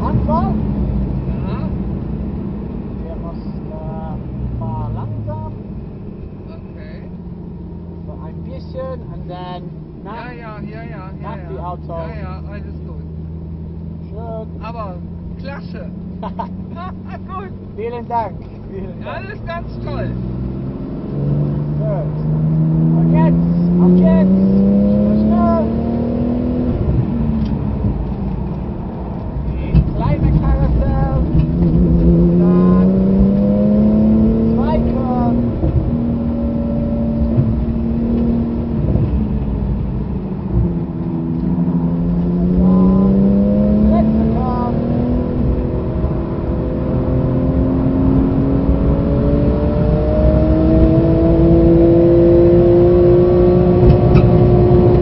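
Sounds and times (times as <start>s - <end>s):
car engine under hard driving: 0.0s - 55.0s.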